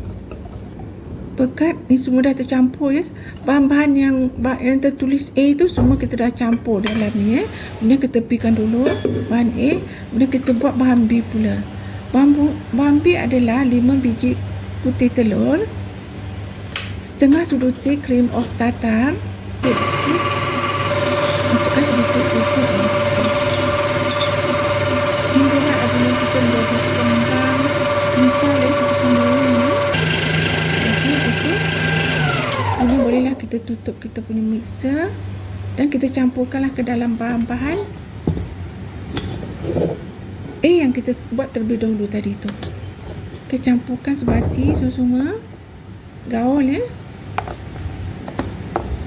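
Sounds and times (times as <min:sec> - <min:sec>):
stand mixer motor humming: 0:19.6 - 0:33.2.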